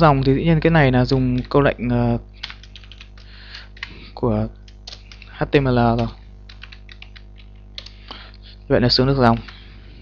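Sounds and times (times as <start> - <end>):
low electrical hum: 0.0 - 10.0
computer keyboard typing: 1.1 - 1.7, 2.4 - 4.0, 4.6 - 8.1, 9.3 - 9.6.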